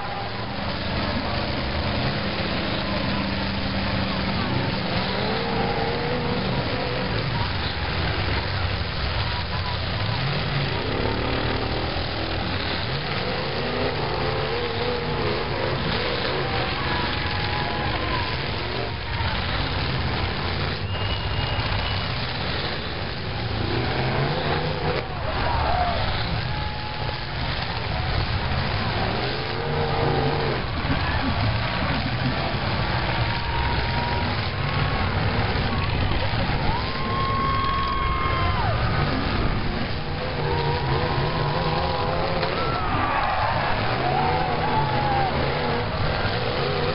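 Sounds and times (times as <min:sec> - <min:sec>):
car engines revving: 0:00.0 - 0:46.9
voices: 0:00.0 - 0:46.9
wheels spinning in dirt: 0:00.0 - 0:46.9.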